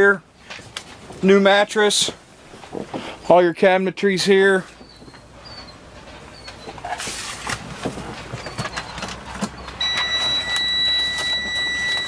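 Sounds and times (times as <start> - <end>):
high electronic warning beep: 9.8 - 12.0.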